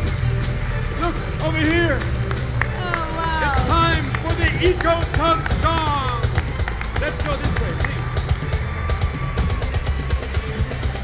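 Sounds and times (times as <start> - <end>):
pop music with deep bass: 0.0 - 11.0.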